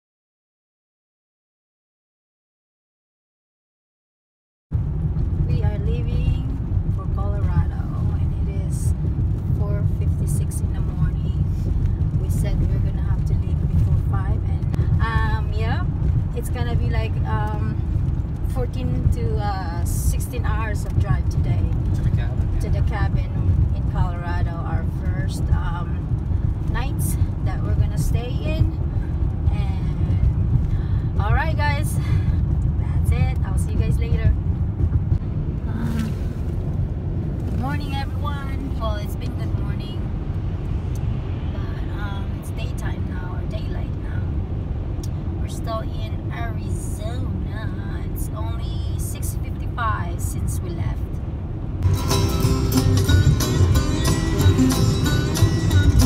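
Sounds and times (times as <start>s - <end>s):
road rumble inside moving car: 4.7s - 56.0s.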